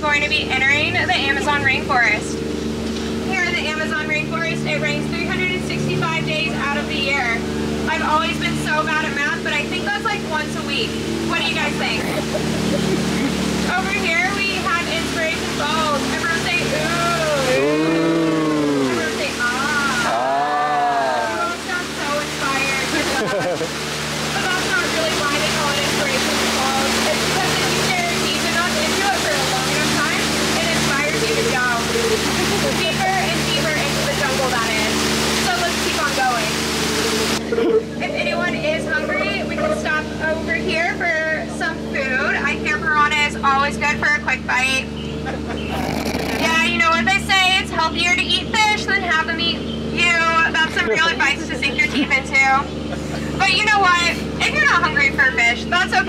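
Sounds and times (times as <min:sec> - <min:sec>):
boat low hum: 0:00.0 - 0:56.0
voices: 0:00.0 - 0:56.0
waterfall rushing: 0:10.1 - 0:37.5
passengers chorusing ooh: 0:16.7 - 0:21.7.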